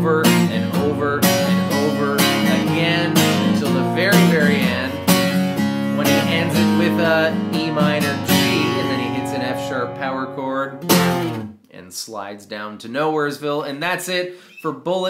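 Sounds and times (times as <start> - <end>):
man singing: 0.0 - 5.2, 5.8 - 11.2
acoustic guitar strumming: 0.0 - 11.5.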